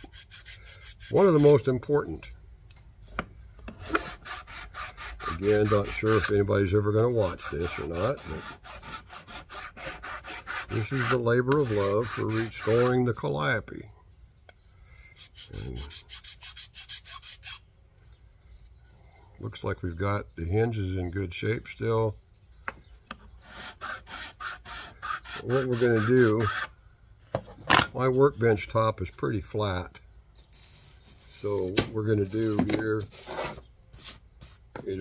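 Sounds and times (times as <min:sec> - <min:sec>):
file rasping on wood: 0:00.0 - 0:01.6, 0:03.8 - 0:06.4, 0:07.0 - 0:13.0, 0:15.2 - 0:17.6, 0:23.4 - 0:26.7.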